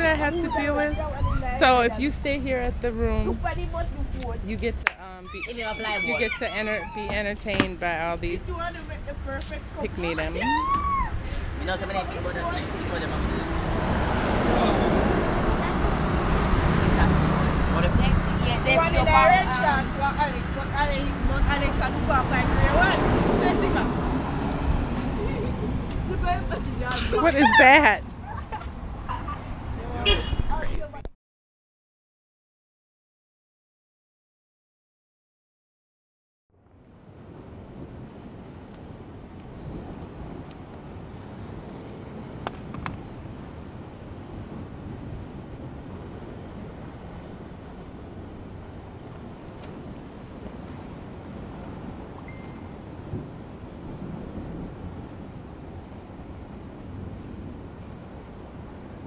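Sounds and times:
wind on microphone: 0:00.0 - 0:31.1, 0:37.0 - 0:59.0
faint distant calls: 0:05.0 - 0:08.5
person laughing: 0:26.9 - 0:29.4.

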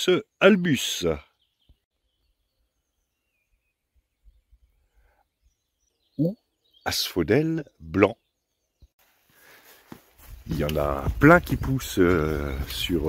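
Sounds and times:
man speaking: 0:00.0 - 0:01.2, 0:06.2 - 0:08.2, 0:10.4 - 0:13.0
faint bird chirps: 0:00.0 - 0:10.6
soft low bumps: 0:09.9 - 0:13.0.

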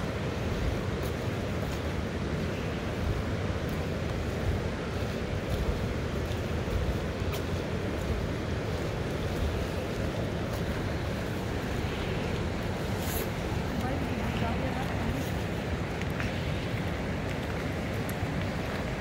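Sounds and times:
fast choppy river rushing: 0:00.0 - 0:19.0
wind buffeting microphone: 0:00.0 - 0:19.0.

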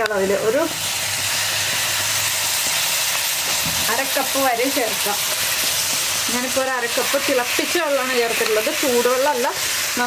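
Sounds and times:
water sizzling in hot pan: 0:00.0 - 0:10.0.

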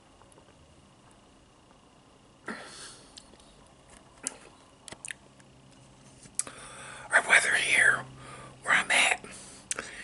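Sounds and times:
man whispering: 0:07.1 - 0:09.3.

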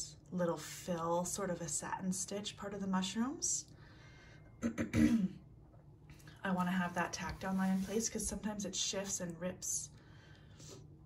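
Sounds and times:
woman clearing her throat: 0:04.6 - 0:05.4.

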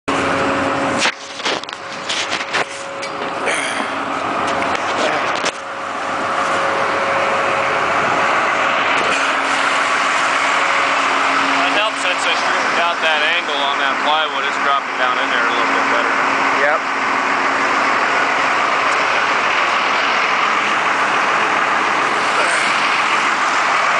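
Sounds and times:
diesel engine humming: 0:00.1 - 0:23.9.

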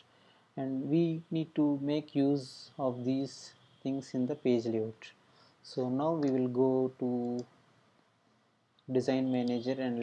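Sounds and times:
computer mouse clicks: 0:07.1 - 0:07.5.

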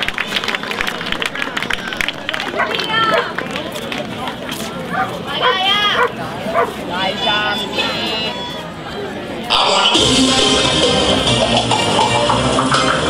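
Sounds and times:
audience applause: 0:00.0 - 0:04.4
crowd noise: 0:00.0 - 0:13.0.

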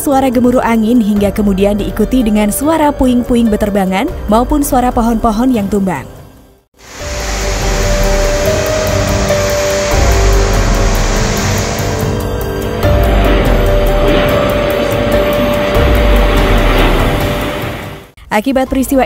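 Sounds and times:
background music: 0:00.0 - 0:19.0
storm wind and heavy rain: 0:06.8 - 0:18.2.

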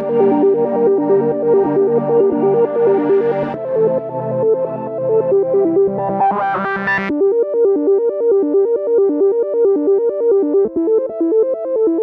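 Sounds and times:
techno synthesizer arpeggio: 0:00.0 - 0:12.0.

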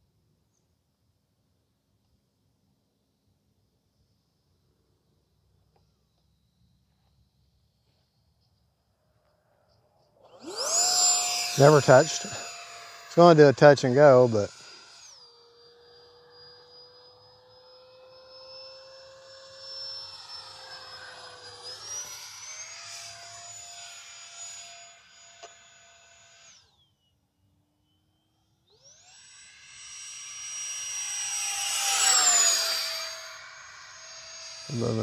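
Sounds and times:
electric jet fan whine: 0:10.3 - 0:27.1, 0:27.8 - 0:35.0.

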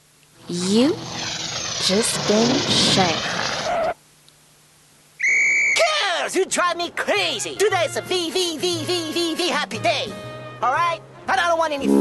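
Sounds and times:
short whistle blast: 0:05.2 - 0:05.9.

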